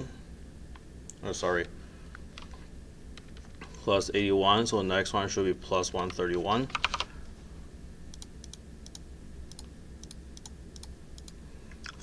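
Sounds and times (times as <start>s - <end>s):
faint low hum: 0.0s - 12.0s
computer keys clicking: 6.0s - 7.1s, 8.1s - 12.0s.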